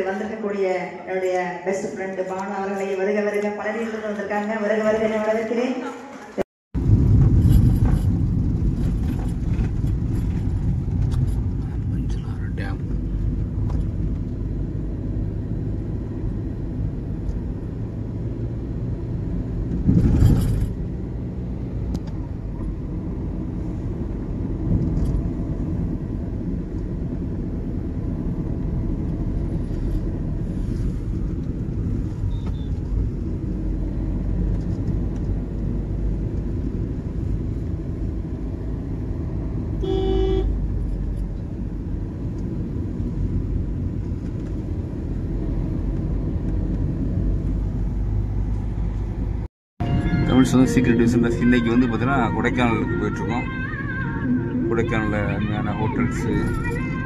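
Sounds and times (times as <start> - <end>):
road and engine noise in car: 6.8 - 57.0
short horn toot: 39.8 - 40.6, 49.8 - 51.2.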